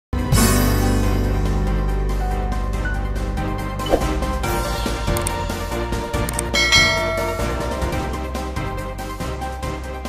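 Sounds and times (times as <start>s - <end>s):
background music: 0.2s - 10.0s
bright bell chime: 6.6s - 8.3s.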